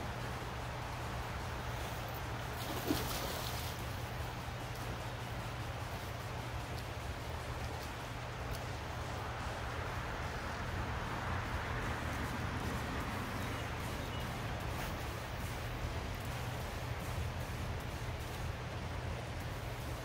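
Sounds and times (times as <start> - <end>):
river water rushing: 0.0 - 20.0.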